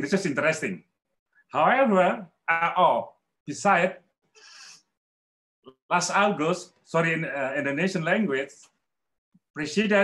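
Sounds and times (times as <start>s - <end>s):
man speaking: 0.0s - 4.1s, 5.7s - 8.8s.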